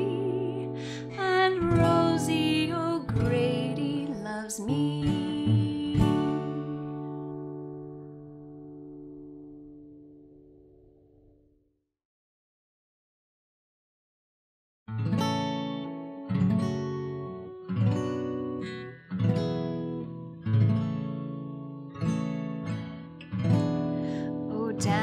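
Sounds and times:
acoustic guitar strumming: 0:00.0 - 0:10.8, 0:15.0 - 0:25.0.

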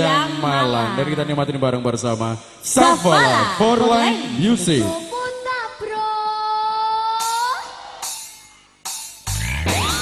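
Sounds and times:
band playing: 0:09.3 - 0:10.0.

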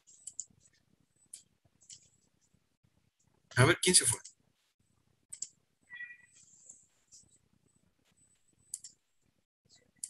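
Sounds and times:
sharp clicks: 0:05.3 - 0:05.6.

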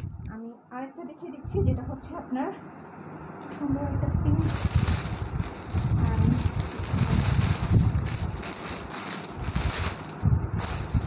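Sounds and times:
rustling and rubbing noise: 0:04.4 - 0:11.0.

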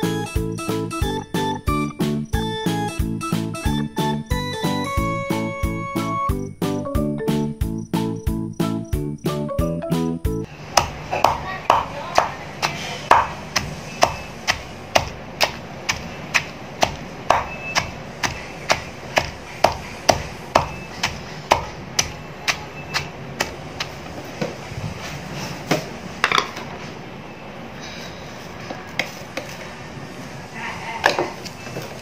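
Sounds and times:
wooden pestle pounding in mortar: 0:10.7 - 0:24.6.

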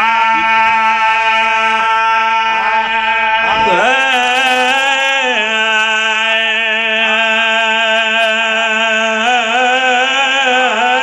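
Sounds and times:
man singing with vibrato: 0:00.0 - 0:11.0
steady sustained drone: 0:00.0 - 0:11.0.

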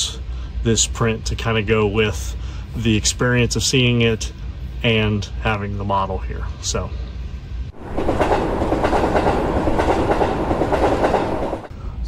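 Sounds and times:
train rolling along track: 0:03.0 - 0:12.0.

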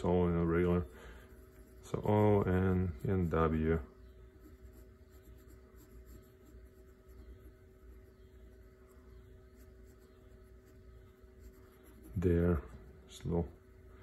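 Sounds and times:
faint steady hum: 0:00.0 - 0:14.0
pencil scratching on paper: 0:00.5 - 0:03.6, 0:04.3 - 0:12.4.

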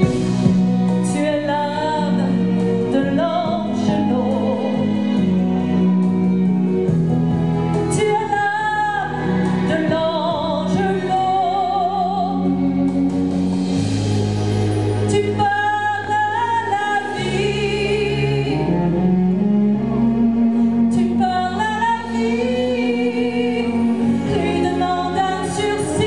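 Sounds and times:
sustained bass notes: 0:00.0 - 0:26.0
woman singing into a microphone: 0:00.9 - 0:05.7, 0:07.8 - 0:13.0, 0:15.1 - 0:18.9, 0:20.9 - 0:26.0.

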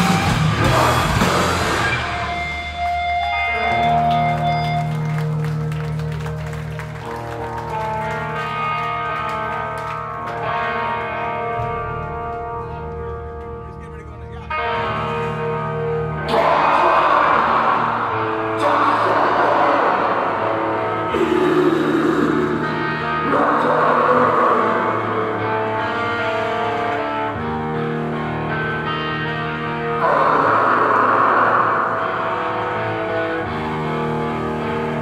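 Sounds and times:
drums: 0:00.0 - 0:07.8
bass guitar: 0:00.0 - 0:35.0
distorted electric guitars: 0:00.0 - 0:35.0.

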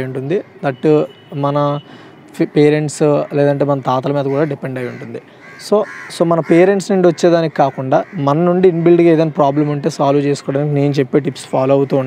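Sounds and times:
crow cawing: 0:03.3 - 0:08.6, 0:09.3 - 0:10.1.

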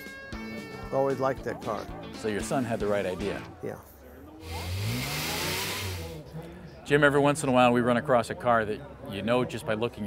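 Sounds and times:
rushing hiss: 0:04.4 - 0:06.2
car engine revving: 0:04.4 - 0:06.3.

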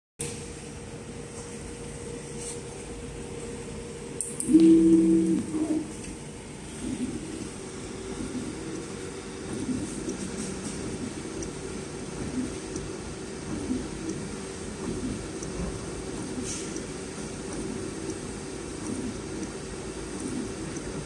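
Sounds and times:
soldering robot humming: 0:04.1 - 0:06.2
two-note stepper motor whine: 0:04.4 - 0:06.1
machine clicks: 0:08.2 - 0:21.0.

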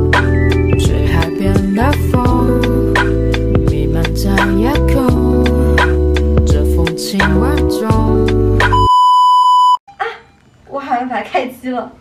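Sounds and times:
steady high test tone beep: 0:08.7 - 0:09.9
woman speaking: 0:10.0 - 0:12.0.

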